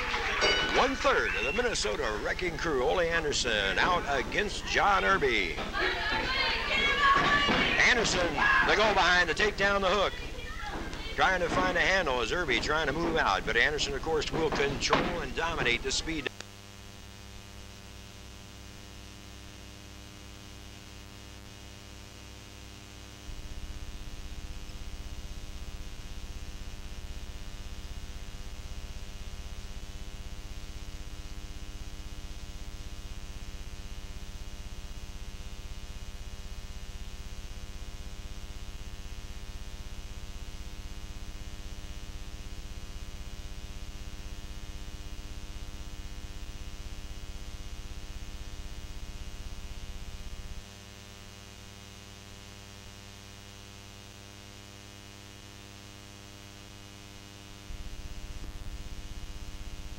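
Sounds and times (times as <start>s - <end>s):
electrical mains hum and buzz: 0.0s - 59.9s.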